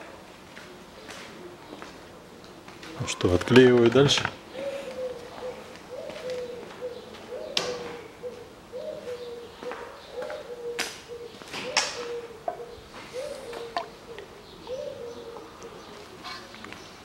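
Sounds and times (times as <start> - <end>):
bird cooing: 4.3 - 17.0.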